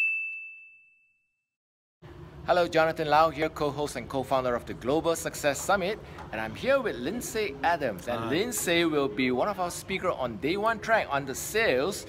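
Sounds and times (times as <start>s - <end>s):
bright chime ding: 0.0s - 1.0s.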